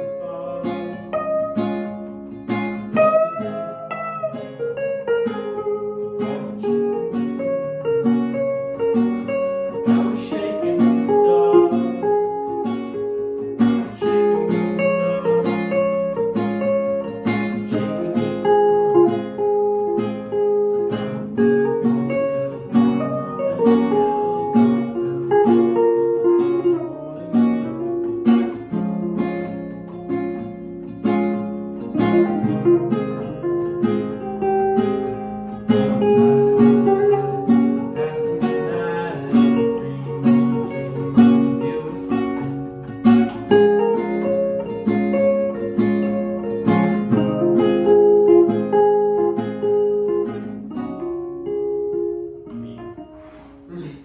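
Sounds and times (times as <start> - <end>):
classical guitar: 0.0 - 54.0
electric guitar: 0.0 - 54.0.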